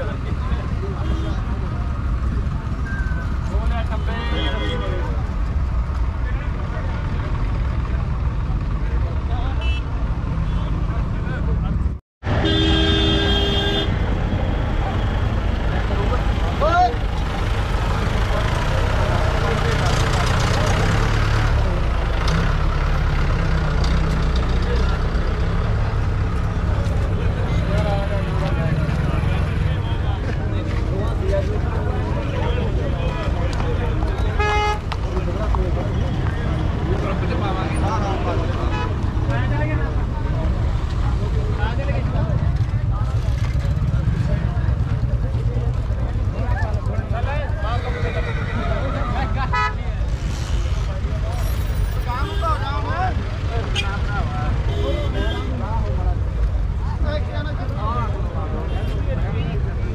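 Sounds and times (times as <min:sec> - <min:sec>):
crowd chatter: 0:00.0 - 0:59.9
vehicle engines rumbling: 0:00.0 - 0:59.9
vehicle horn: 0:09.6 - 0:09.9, 0:12.3 - 0:14.0, 0:34.4 - 0:34.9.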